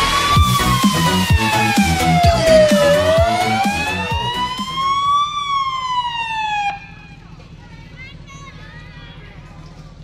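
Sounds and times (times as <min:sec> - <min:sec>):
music with a beat: 0:00.0 - 0:04.9
siren wailing: 0:00.0 - 0:07.2.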